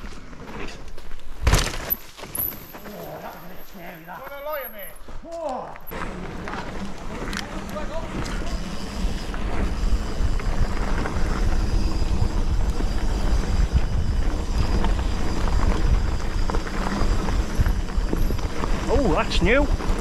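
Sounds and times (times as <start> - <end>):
tyres on dirt trail: 0.0 - 20.0
bike rattling over bumps: 5.9 - 20.0
wind buffeting microphone: 6.7 - 20.0.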